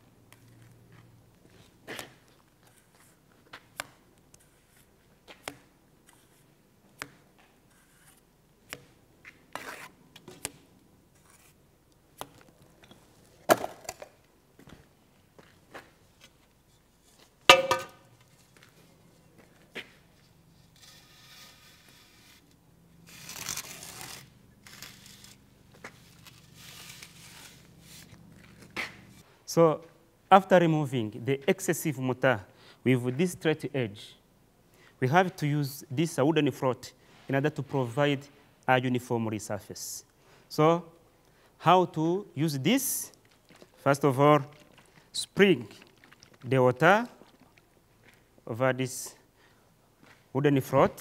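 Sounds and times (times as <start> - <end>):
sharp knock: 17.5 - 18.0
trowel scraping mortar off wall: 20.6 - 22.4.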